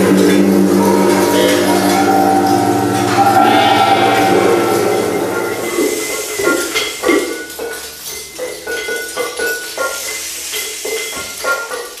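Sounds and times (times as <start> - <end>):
gongs and cymbals struck: 0.0 - 7.9
steady hiss: 0.0 - 12.0.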